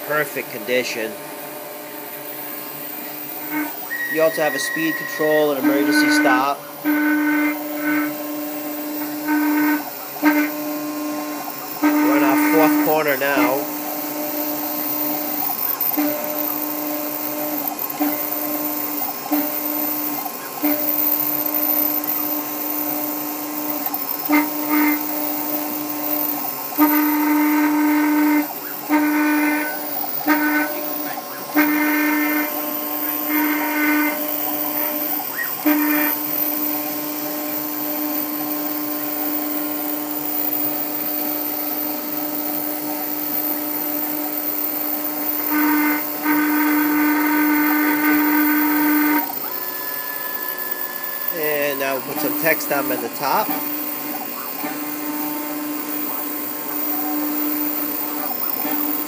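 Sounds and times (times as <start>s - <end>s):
engraving bit whine: 0.0s - 59.0s
engraving machine hum: 0.0s - 59.0s.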